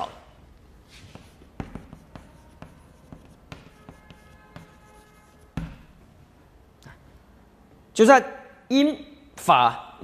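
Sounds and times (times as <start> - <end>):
chalk tapping and scratching: 0.8 - 6.0.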